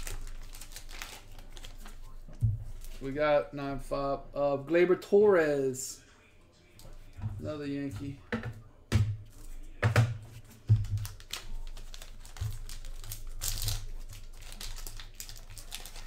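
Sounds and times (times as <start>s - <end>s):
foil wrapper crinkling: 0.0s - 2.2s, 10.5s - 16.0s.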